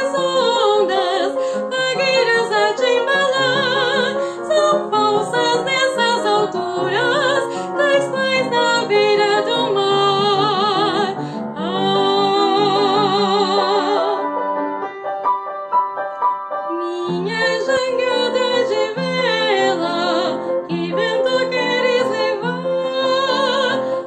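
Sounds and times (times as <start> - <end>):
woman singing with vibrato: 0.0 - 14.3, 16.7 - 24.0
upright piano: 0.0 - 24.0
singer breathing: 1.4 - 1.7, 4.2 - 4.5, 7.5 - 7.8, 11.2 - 11.6.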